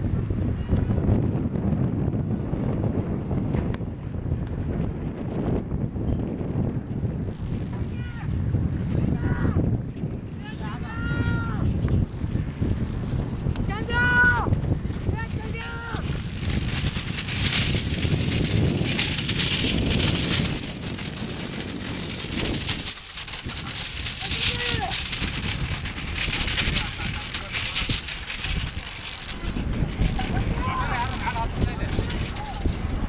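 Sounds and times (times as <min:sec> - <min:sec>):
cart wheels and frame rattling: 0:11.0 - 0:33.0.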